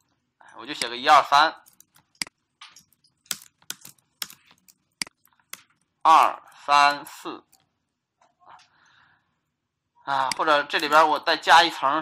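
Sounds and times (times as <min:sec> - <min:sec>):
typing on computer keyboard: 0:01.6 - 0:05.9.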